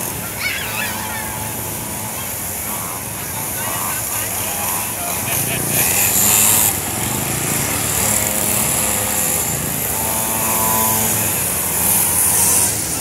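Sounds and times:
general outdoor noise: 0:00.0 - 0:13.0
high engine whine: 0:00.0 - 0:13.0
mini dirt bike engines revving: 0:00.0 - 0:13.0.

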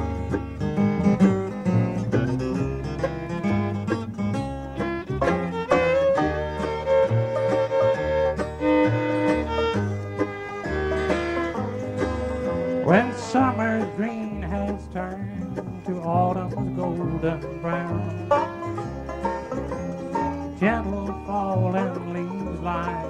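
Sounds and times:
bluegrass band playing: 0:00.0 - 0:23.0
walking bass line: 0:00.0 - 0:23.0
person singing: 0:12.1 - 0:18.5, 0:20.6 - 0:23.0.

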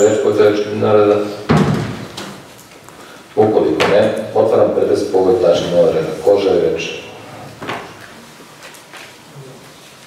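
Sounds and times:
man speaking: 0:00.0 - 0:01.5, 0:03.4 - 0:07.6.

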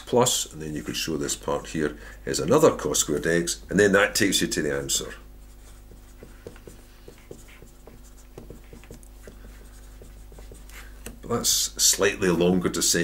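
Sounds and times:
steady low hum: 0:00.0 - 0:13.0
marker pen scratching on paper: 0:05.4 - 0:11.2.

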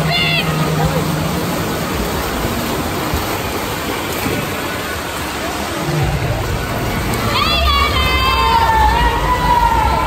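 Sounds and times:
swimmers splashing: 0:00.0 - 0:10.0.

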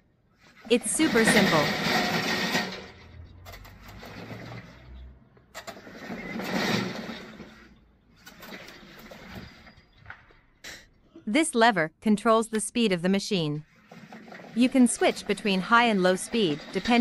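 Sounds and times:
robot electric motors and tracks: 0:00.4 - 0:10.1, 0:13.7 - 0:17.0.

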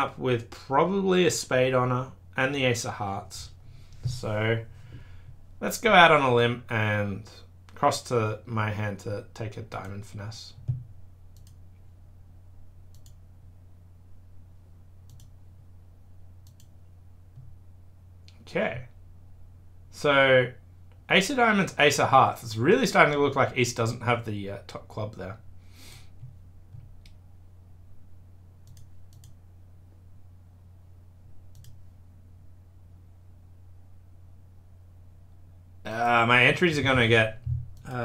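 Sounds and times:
low steady hum: 0:00.0 - 0:38.0
computer mouse clicks: 0:10.6 - 0:11.6, 0:12.9 - 0:13.2, 0:15.1 - 0:15.4, 0:16.4 - 0:16.8, 0:28.6 - 0:29.4, 0:31.5 - 0:31.8.

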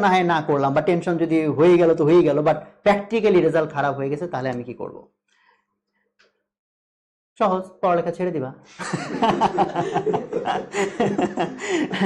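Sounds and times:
man laughing: 0:08.8 - 0:12.0.

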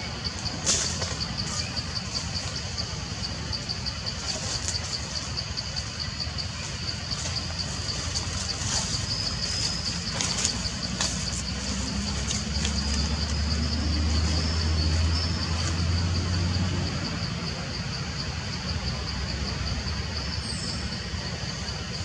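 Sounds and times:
low engine rumble: 0:00.0 - 0:22.0.

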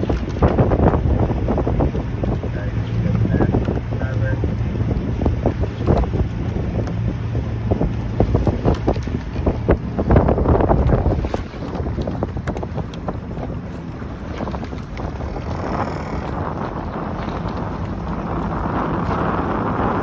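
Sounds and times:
boat engine hum: 0:00.0 - 0:20.0
water splashing: 0:00.0 - 0:20.0
wind buffeting microphone: 0:00.0 - 0:20.0.

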